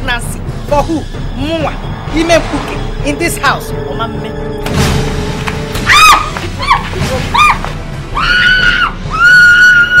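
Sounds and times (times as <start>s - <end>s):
background music: 0.0s - 10.0s
woman screaming: 5.9s - 10.0s.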